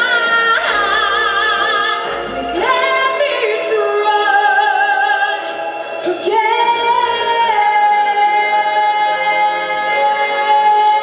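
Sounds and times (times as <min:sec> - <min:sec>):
woman singing with vibrato: 0:00.0 - 0:11.0.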